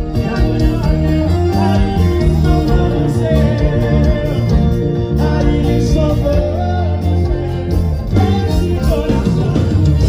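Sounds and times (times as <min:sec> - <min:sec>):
live band music: 0:00.0 - 0:10.0
person singing: 0:00.0 - 0:10.0.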